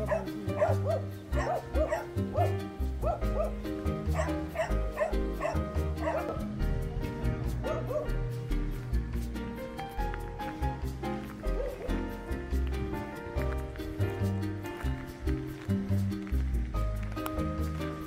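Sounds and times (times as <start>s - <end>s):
dogs barking: 0.0s - 6.5s, 7.6s - 8.2s, 11.4s - 12.2s.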